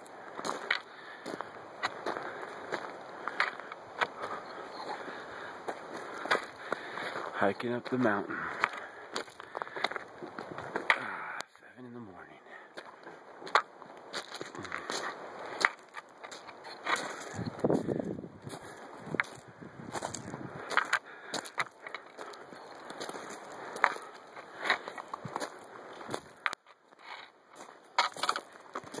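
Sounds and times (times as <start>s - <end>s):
footsteps crunching on gravel: 0.0s - 29.0s.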